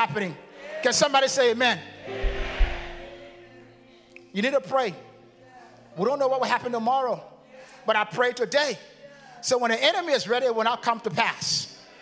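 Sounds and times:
congregation calling amen: 0.0s - 12.0s
low bass thud: 2.2s - 3.1s.

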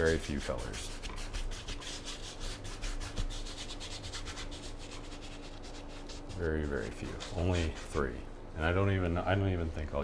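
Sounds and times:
brush scrubbing canvas: 0.0s - 8.2s.

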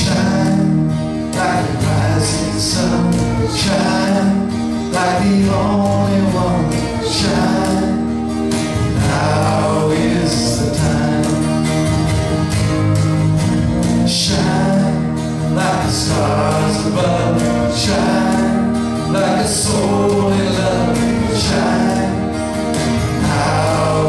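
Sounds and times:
cajon beat: 0.0s - 24.0s
strummed acoustic guitars: 0.0s - 24.0s
voices singing: 0.0s - 24.0s.

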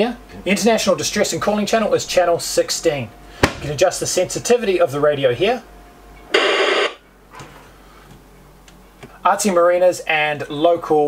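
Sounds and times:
radio static hiss: 6.3s - 7.0s.

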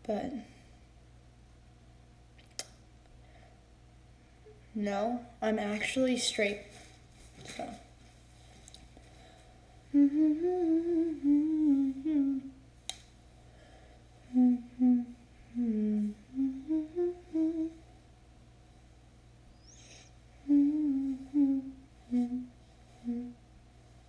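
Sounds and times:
woman humming: 9.9s - 12.6s, 14.3s - 17.9s, 19.6s - 23.4s.

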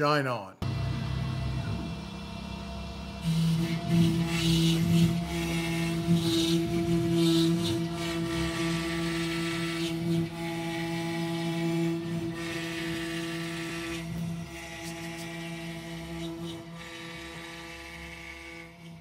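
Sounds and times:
cnc spindle humming: 0.6s - 19.0s.

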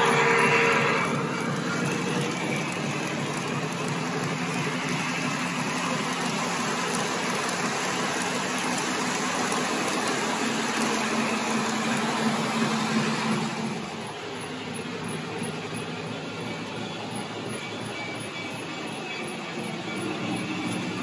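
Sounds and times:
toy train cars rumbling: 0.0s - 21.0s.

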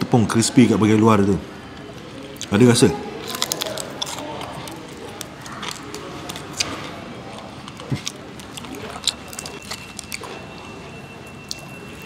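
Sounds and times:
crunching fried chicken: 2.2s - 12.0s.

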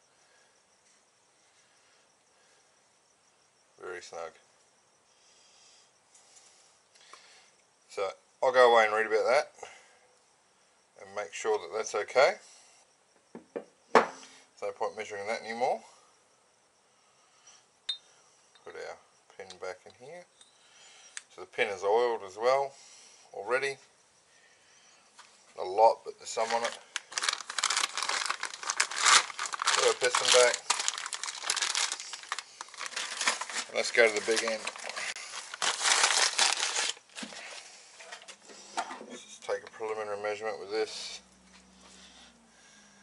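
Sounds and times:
metallic clink with ring: 17.9s - 18.2s
faint handling sounds: 25.0s - 39.7s
towel crinkly rustle: 26.3s - 37.7s.

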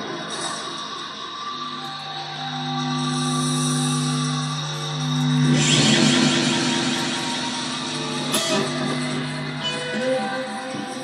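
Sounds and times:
electric guitar chords: 2.3s - 11.0s.

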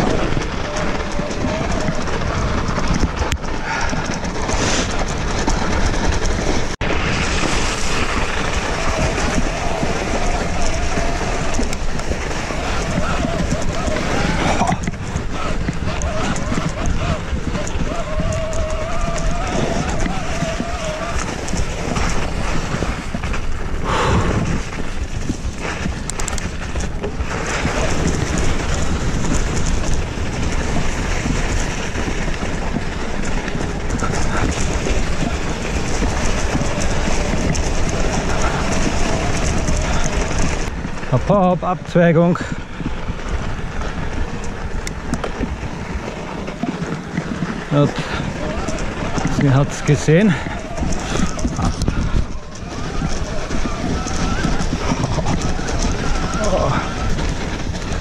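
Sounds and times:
bike rattling: 0.0s - 58.0s
tyre noise: 0.0s - 58.0s
wind rushing on microphone: 0.0s - 58.0s.

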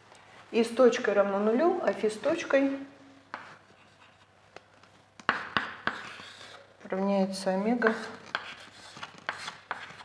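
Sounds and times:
chalk writing on a blackboard: 3.3s - 4.4s, 5.2s - 6.7s, 7.8s - 10.0s.

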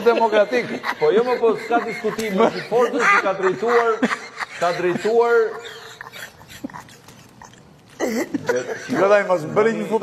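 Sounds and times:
man's stifled laughter: 0.0s - 9.2s.

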